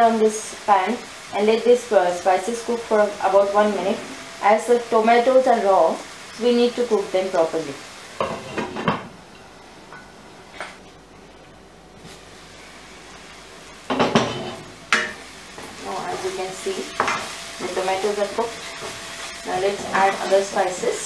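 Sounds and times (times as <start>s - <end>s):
paste sizzling in oil: 0.1s - 8.8s, 12.0s - 21.0s
wooden spatula scraping pan: 8.2s - 9.0s, 15.6s - 20.6s.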